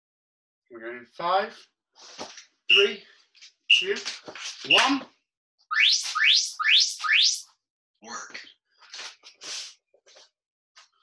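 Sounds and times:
rising electronic timer chirps: 0:02.7 - 0:03.0, 0:03.7 - 0:03.9, 0:05.7 - 0:07.4.

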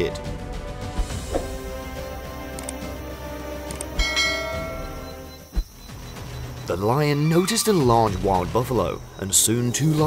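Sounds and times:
bell-like chime ringing: 0:04.0 - 0:05.5.

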